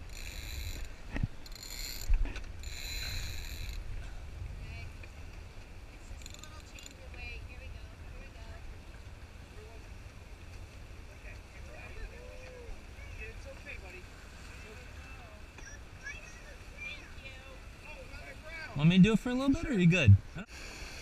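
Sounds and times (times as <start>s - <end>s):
winch ratchet clicking: 0.0s - 3.8s, 6.2s - 7.0s
low wind rumble: 0.0s - 6.2s.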